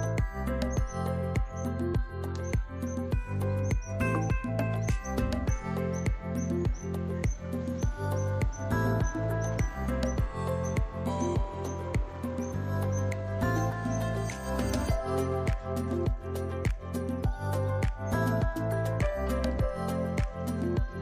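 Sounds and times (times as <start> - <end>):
background music with steady beat: 0.0 - 21.0
deep bass line: 0.0 - 21.0.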